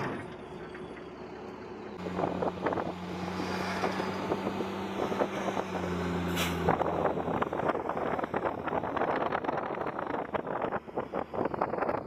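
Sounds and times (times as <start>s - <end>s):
military vehicle engine running: 0.0s - 12.0s.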